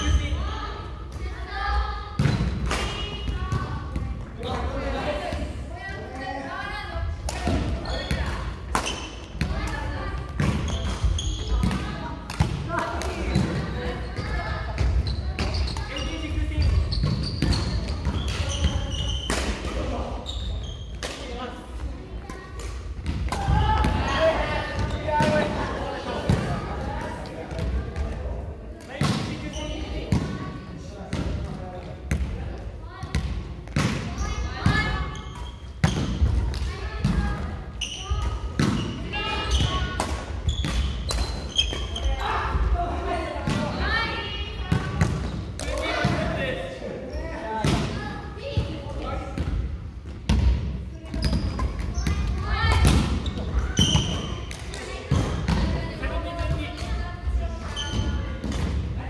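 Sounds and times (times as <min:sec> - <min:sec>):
sneakers squeaking: 0:07.5 - 0:12.5, 0:13.1 - 0:21.3, 0:22.3 - 0:25.6, 0:28.9 - 0:30.5, 0:33.0 - 0:42.7, 0:48.4 - 0:58.9.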